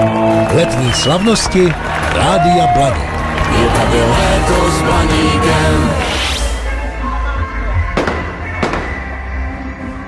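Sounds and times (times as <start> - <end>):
music with low bass: 2.9 - 10.0
fireworks bursting with bangs: 8.0 - 9.0.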